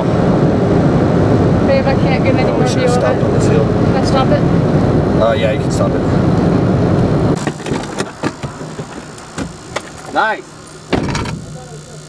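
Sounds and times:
sharp clicks and knocks: 7.4s - 10.2s, 10.9s - 11.5s.

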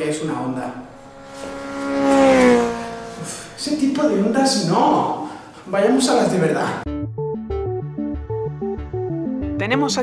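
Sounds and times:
motorcycle engine passing by: 0.0s - 5.3s.

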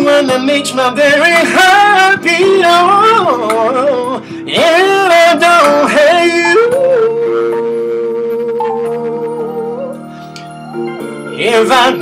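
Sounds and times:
man singing wordless vocal run: 0.0s - 9.5s, 11.4s - 12.0s
backing track held notes: 0.0s - 12.0s.

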